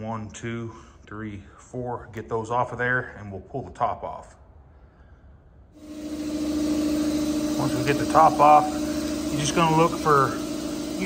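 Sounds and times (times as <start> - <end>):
machine humming with hiss: 5.8 - 11.0.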